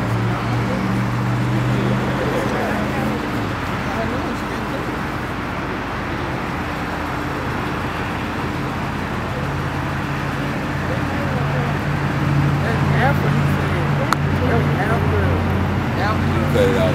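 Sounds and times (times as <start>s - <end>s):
faint voices: 0.0s - 16.9s
road traffic noise: 0.0s - 16.9s
vehicle engine hum: 0.0s - 16.9s.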